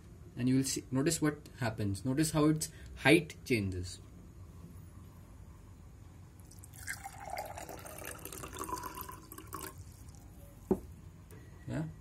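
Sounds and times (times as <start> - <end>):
water pouring into a glass: 6.5 - 10.3.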